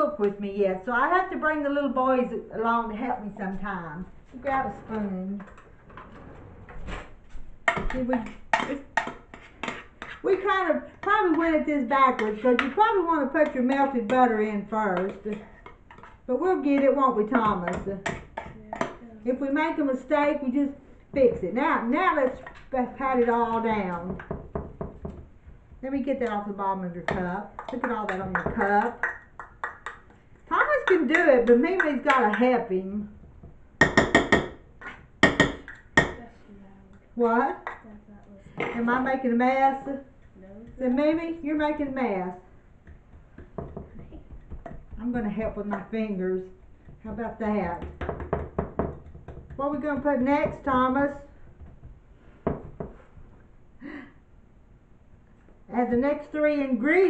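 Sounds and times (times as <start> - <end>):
spoon scraping baking dish: 7.1 - 19.0.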